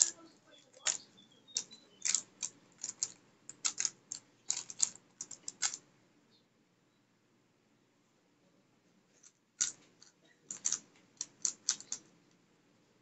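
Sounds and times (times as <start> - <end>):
puzzle cube plastic clacking: 0.0 - 5.8, 9.6 - 12.1.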